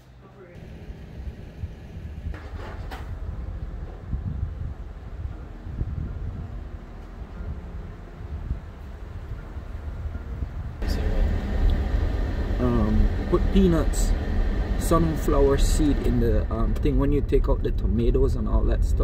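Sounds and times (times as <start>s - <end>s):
wind rumbling on microphone: 0.8s - 19.0s
rushing road noise from car: 9.9s - 19.0s.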